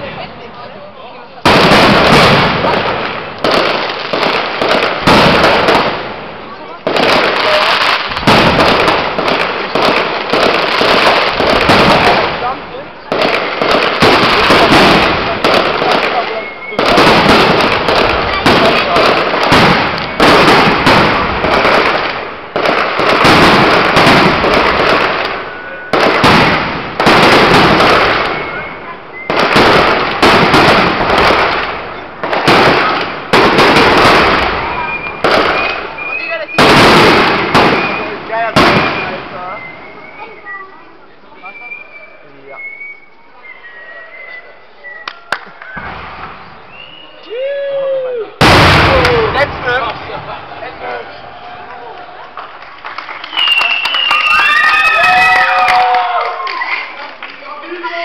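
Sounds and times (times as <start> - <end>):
fireworks bursting and crackling: 0.0 - 58.0.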